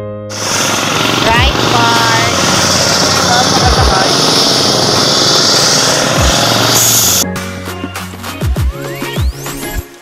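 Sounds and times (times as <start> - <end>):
voices talking: 1.0 - 5.2.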